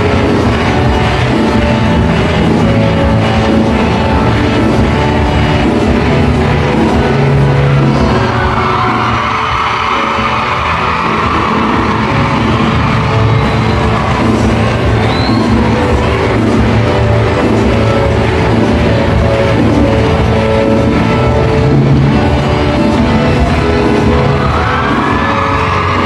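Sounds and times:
crowd yelling and cheering: 0.0s - 26.0s
live band with singing: 0.0s - 26.0s.

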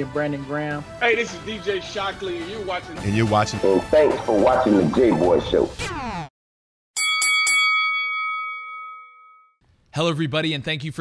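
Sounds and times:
bell-like chime ringing: 7.0s - 9.6s.

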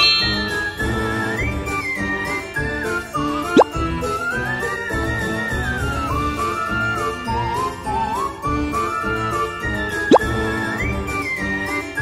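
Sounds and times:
cheerful music with bouncy beat: 0.0s - 12.0s.

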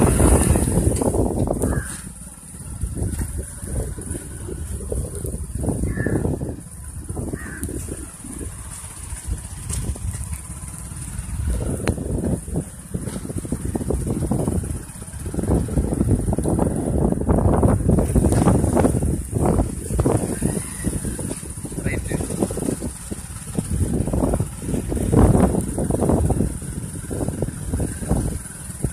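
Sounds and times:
gusty wind buffeting microphone: 0.0s - 28.9s.

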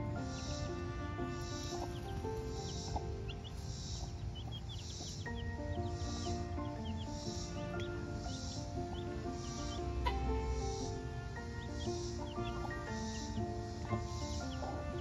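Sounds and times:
background music with steady beat: 0.0s - 15.0s
chicks peeping: 0.0s - 15.0s.

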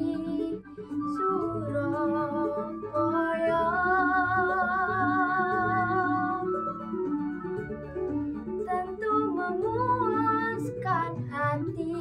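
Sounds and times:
girl singing with vibrato: 0.0s - 6.6s, 8.6s - 12.0s.

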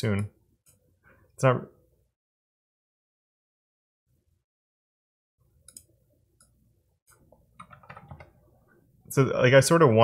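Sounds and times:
faint keyboard typing: 5.6s - 8.4s.

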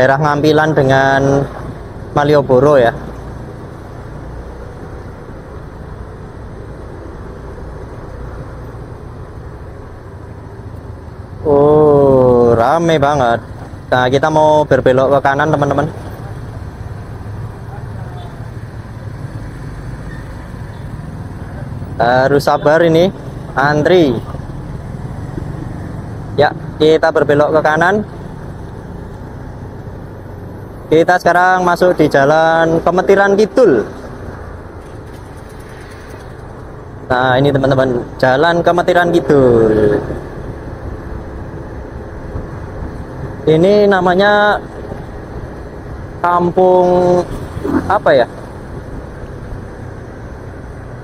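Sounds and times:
scooter engine and road noise: 0.0s - 51.0s
traffic noise: 0.0s - 51.0s.

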